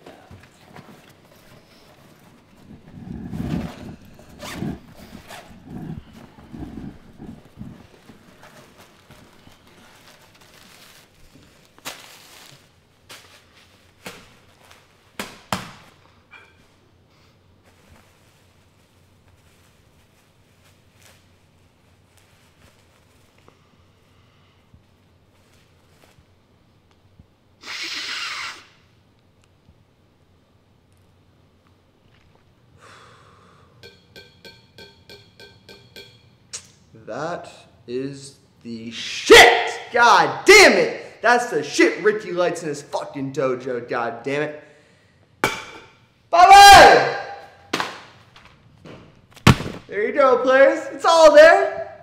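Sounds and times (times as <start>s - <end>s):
fabric rustling: 0.7s - 15.0s
zipper opening: 2.7s - 7.9s
man snorting through nose: 2.9s - 7.8s.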